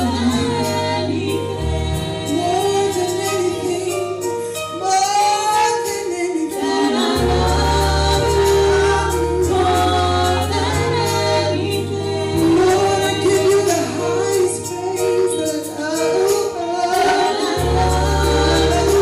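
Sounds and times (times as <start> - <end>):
vocal group singing in harmony: 0.0 - 19.0.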